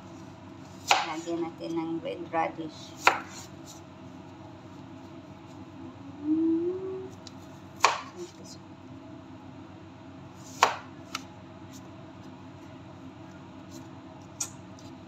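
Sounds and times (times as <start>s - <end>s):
knife chopping on plastic board: 0.8s - 1.2s, 3.0s - 3.4s, 7.8s - 8.2s, 10.5s - 11.3s
low hum rising in pitch: 5.9s - 7.2s.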